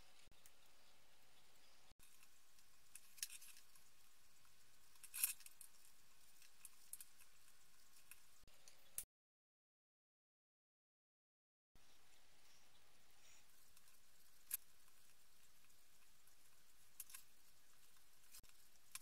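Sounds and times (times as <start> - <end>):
faint clicks of small parts handled: 2.0 - 9.1, 13.4 - 19.0.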